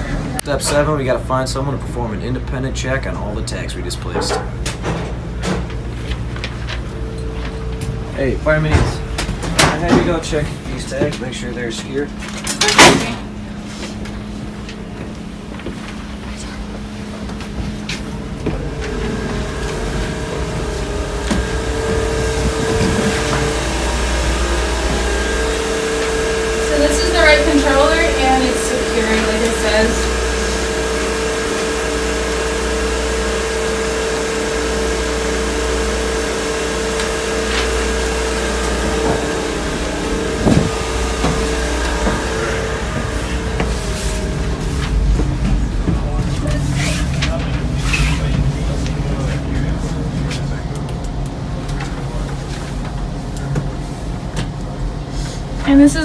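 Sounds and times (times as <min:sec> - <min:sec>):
machinery and ventilation hum: 0:00.0 - 0:56.0
voices: 0:18.4 - 0:31.3.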